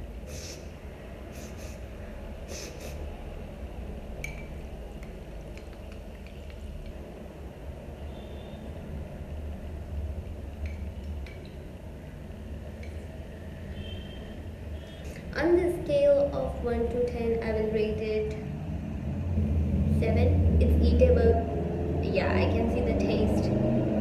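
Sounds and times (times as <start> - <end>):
steady low hum: 0.0 - 24.0
glass bowl clinking: 4.2 - 6.9, 10.6 - 11.6.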